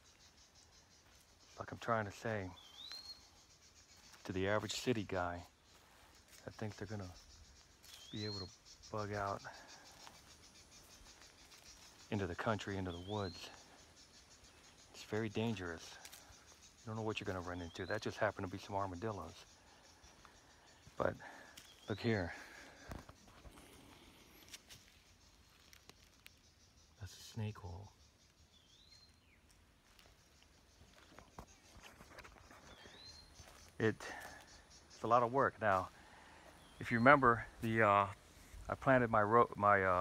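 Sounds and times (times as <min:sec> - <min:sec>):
insect chorus pulsing trill: 0:00.0 - 0:40.0
faint ticks: 0:22.7 - 0:33.7.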